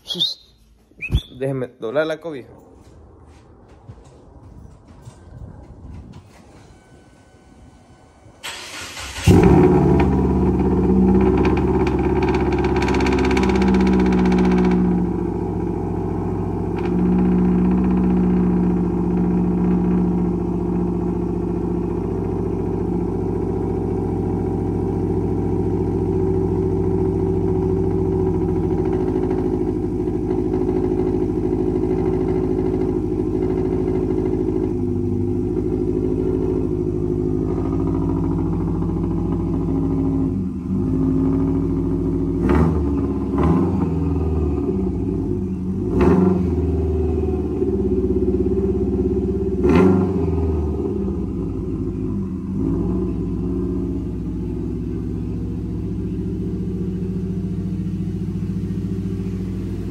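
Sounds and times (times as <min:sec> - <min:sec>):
car engine idling and revving: 0:02.8 - 0:59.9.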